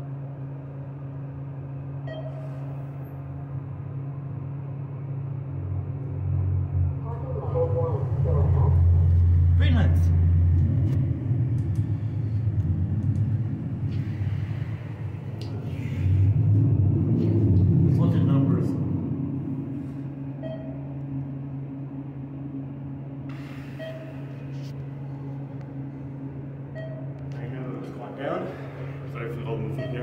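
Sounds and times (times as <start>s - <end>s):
elevator hum and rumble: 0.0s - 30.0s
short faint beeps: 2.1s - 2.7s, 20.4s - 20.8s, 23.6s - 24.3s, 26.8s - 27.2s, 29.8s - 30.0s.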